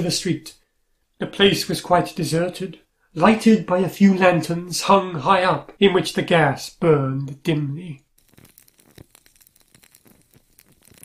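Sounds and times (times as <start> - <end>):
faint crackling and ticking: 7.2 - 11.0.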